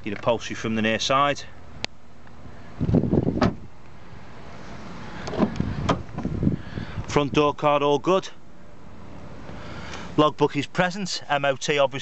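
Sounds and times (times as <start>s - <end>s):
car door shutting with thud: 3.2s - 3.7s, 5.3s - 6.4s
car door latch clicks: 3.3s - 3.6s, 5.2s - 6.3s.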